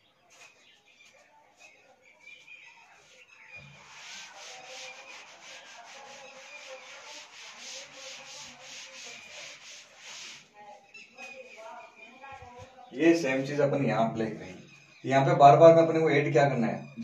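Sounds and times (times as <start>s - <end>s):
eraser rubbing chalkboard: 2.2s - 10.6s.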